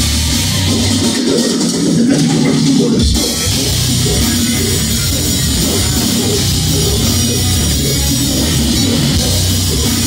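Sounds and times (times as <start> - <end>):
death metal band playing live: 0.0 - 10.0.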